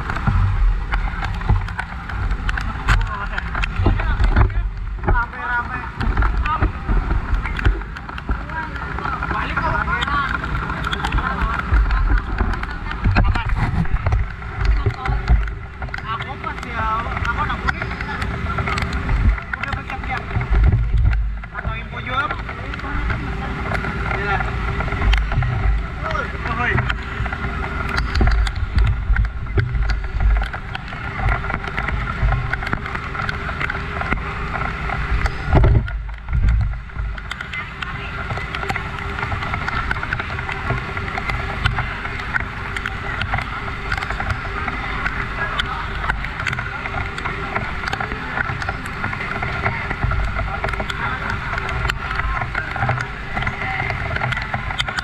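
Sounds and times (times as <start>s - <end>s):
engine running steadily: 0.0s - 55.0s
indistinct voices: 0.0s - 55.0s
low wind: 0.0s - 55.0s
microphone handling rumble: 0.0s - 55.0s.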